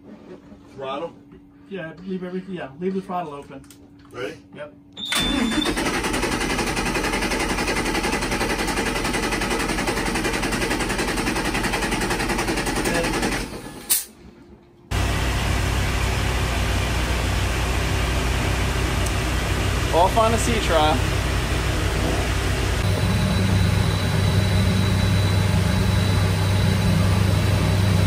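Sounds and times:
engine cranking by starter: 0:05.0 - 0:14.1
boat engines droning: 0:14.9 - 0:28.0.

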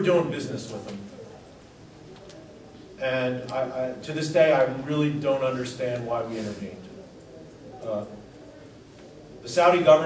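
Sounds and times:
faint low murmur: 0:00.0 - 0:10.0.

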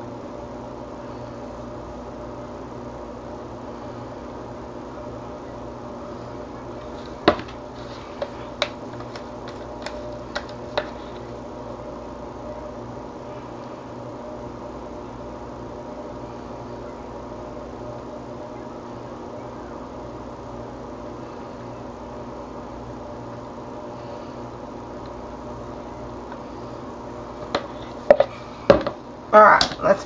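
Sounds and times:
steady low hum: 0:00.0 - 0:30.0
spatula knocking plastic jug: 0:07.0 - 0:11.2, 0:27.5 - 0:29.0.

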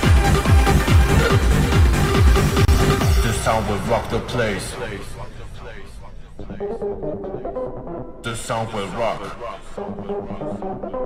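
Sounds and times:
muffled techno music: 0:00.0 - 0:11.0.

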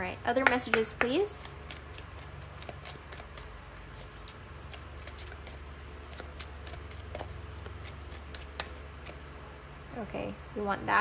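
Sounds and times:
steady low hum: 0:00.0 - 0:11.0
cards being shuffled: 0:01.3 - 0:09.2.

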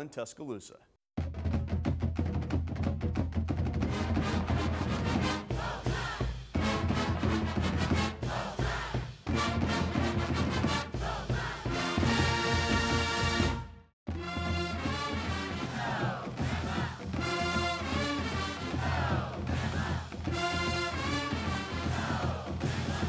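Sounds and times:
music with percussive beat and bass: 0:01.2 - 0:23.0.

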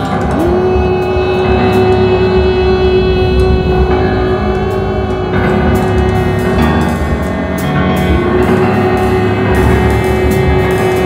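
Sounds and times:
jazz ensemble playing: 0:00.0 - 0:11.0
low bass rumble: 0:00.0 - 0:11.0.

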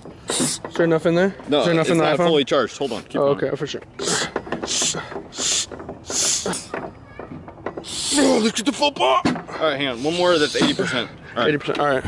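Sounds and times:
hand air pump hissing: 0:00.2 - 0:00.7, 0:04.0 - 0:06.8, 0:07.8 - 0:08.6, 0:09.9 - 0:10.9.

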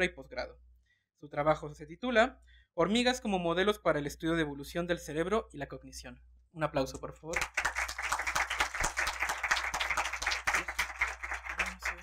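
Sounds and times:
audience clapping: 0:07.3 - 0:12.0.

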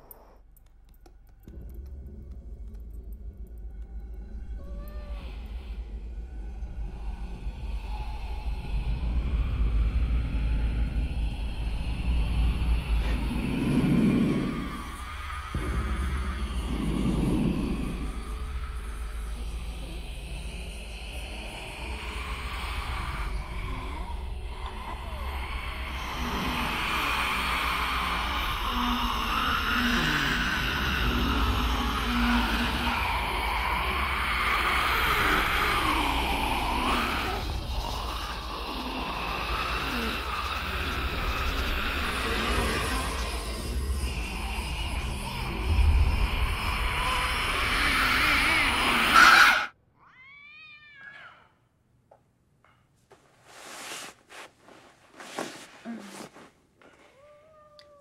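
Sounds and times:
low rumble: 0:01.4 - 0:49.1.

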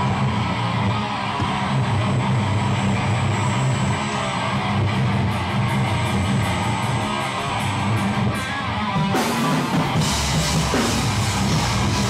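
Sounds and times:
distorted guitar and bass riff: 0:00.0 - 0:12.0
drums and crashing cymbals: 0:00.0 - 0:12.0
heavy band playing live: 0:00.0 - 0:12.0.

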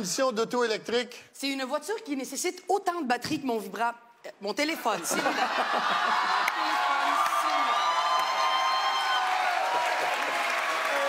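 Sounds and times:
audience laughing: 0:05.0 - 0:06.7
audience applauding and cheering: 0:05.5 - 0:11.0.

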